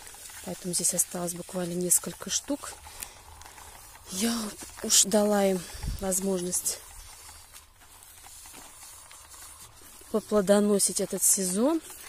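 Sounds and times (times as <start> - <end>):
garden sprayer hissing: 0.0 - 12.0.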